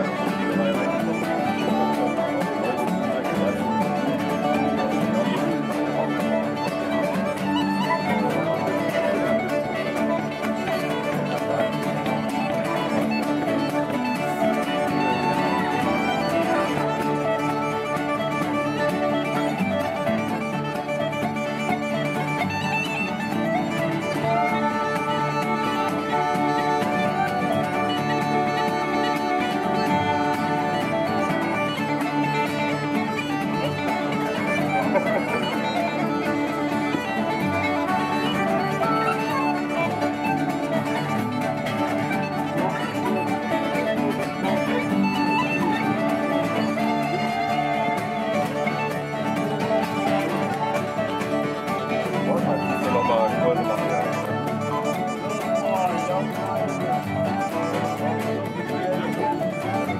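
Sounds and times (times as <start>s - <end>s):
guitars strumming: 0.0s - 59.9s
wooden flutes and whistle melody: 0.0s - 59.9s.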